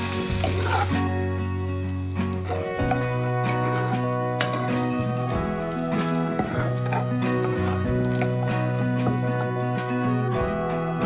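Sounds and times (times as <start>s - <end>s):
background music sustained notes: 0.0s - 11.0s.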